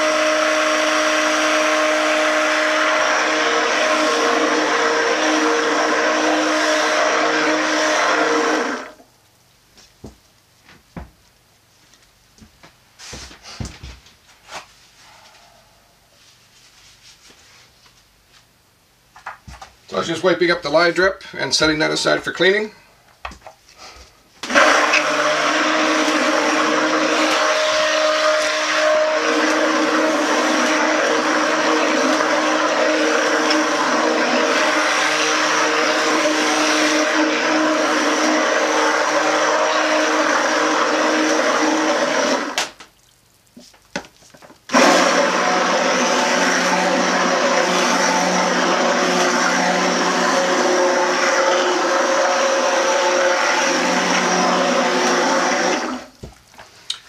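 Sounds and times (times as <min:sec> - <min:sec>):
electric stick blender running: 0:00.0 - 0:09.0, 0:24.4 - 0:42.6, 0:44.7 - 0:56.1.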